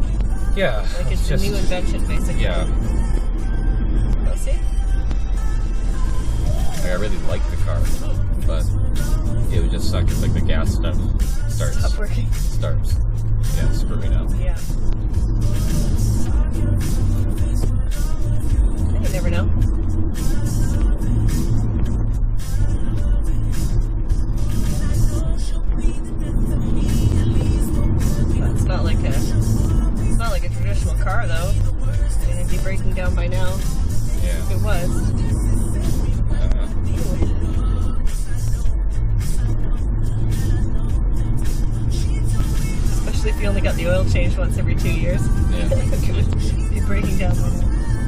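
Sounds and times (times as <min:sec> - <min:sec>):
music playing: 0:00.0 - 0:48.0
road and tyre rumble: 0:00.0 - 0:48.0.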